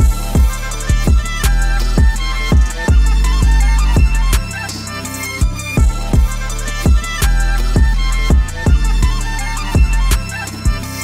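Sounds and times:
deep bass: 0.0s - 11.0s
sampled string melody: 0.0s - 11.0s.

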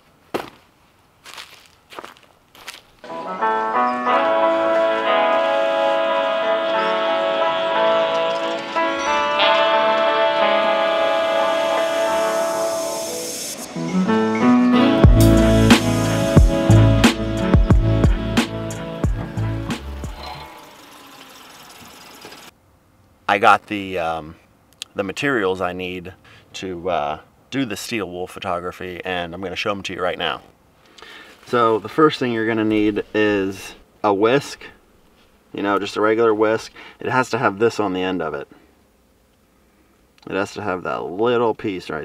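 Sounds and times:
footsteps onto leafy ground: 0.0s - 3.1s
music with sustained notes: 3.0s - 22.5s.

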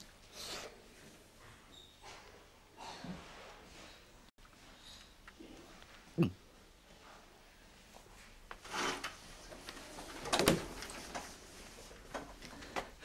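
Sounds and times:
quiet handling sounds: 6.9s - 13.0s.

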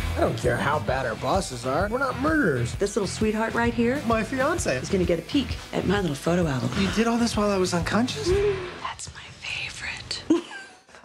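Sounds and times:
soft whispered speech: 8.3s - 10.2s.

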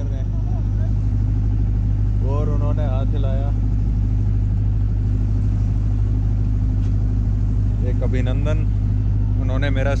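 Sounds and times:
boat engine droning: 0.0s - 10.0s.

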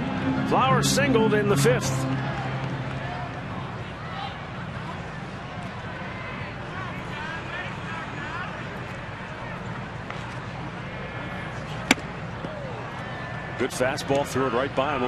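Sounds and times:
crowd murmur: 0.0s - 13.6s.

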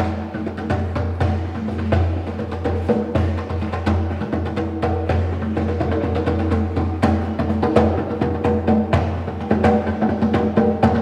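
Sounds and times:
djembe hand drumming: 0.0s - 11.0s.

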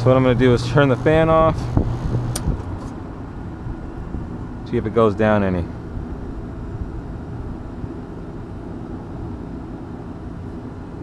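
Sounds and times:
furnace blower fan humming: 0.0s - 11.0s.

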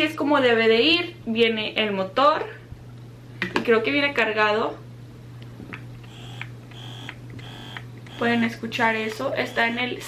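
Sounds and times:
breast pump motor buzzing in pulses: 6.0s - 10.0s.

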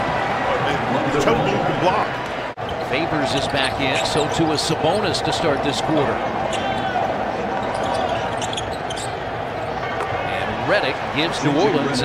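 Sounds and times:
arena crowd noise: 0.0s - 12.0s
sneaker squeaks: 2.7s - 5.1s, 6.5s - 10.1s.

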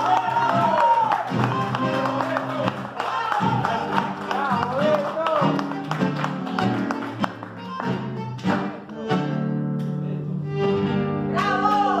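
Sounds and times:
plucked and strummed guitar: 0.0s - 12.0s
bandoneon chords: 0.1s - 12.0s.

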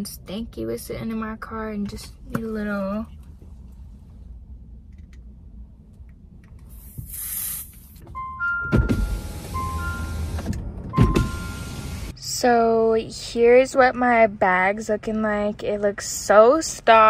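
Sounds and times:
aerosol spray hiss: 6.7s - 7.9s
steady beeping tones: 8.2s - 10.4s
power window motor: 8.7s - 12.1s.

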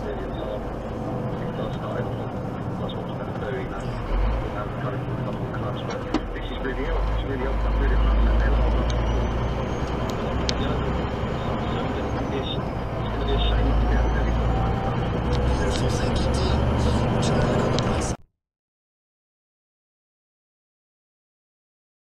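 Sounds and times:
lorry diesel engine accelerating: 0.0s - 18.2s
road noise: 0.0s - 18.2s.

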